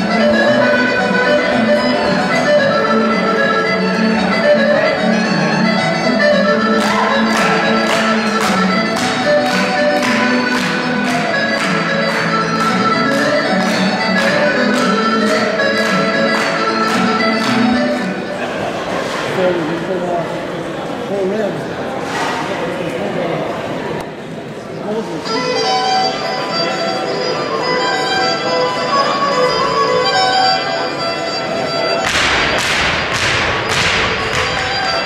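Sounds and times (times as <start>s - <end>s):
fiddle music: 0.0s - 18.4s, 25.1s - 35.0s
murmur of chatter: 0.0s - 35.0s.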